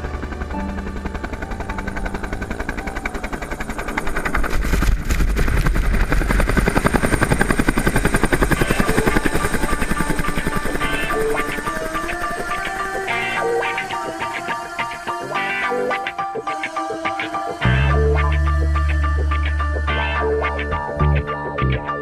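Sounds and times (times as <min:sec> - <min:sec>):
helicopter rotor chop: 0:00.0 - 0:19.7.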